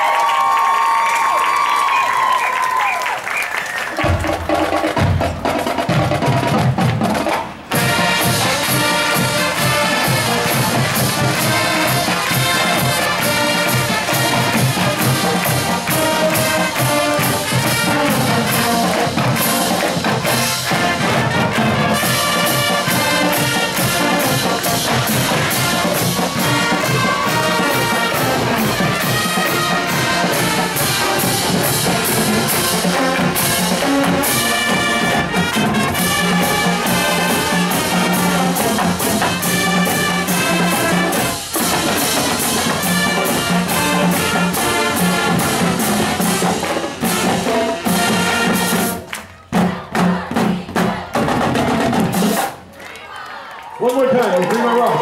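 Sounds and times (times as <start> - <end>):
marching band playing: 1.7 - 52.9
drumline beat: 3.5 - 52.7.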